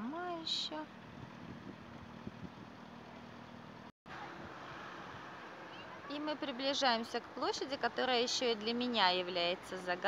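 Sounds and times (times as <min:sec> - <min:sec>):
vehicle engine hum: 0:00.0 - 0:10.0.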